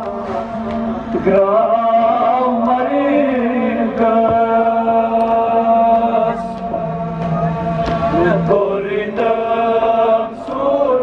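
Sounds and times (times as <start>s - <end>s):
person chanting a mourning lament: 0.0s - 11.0s.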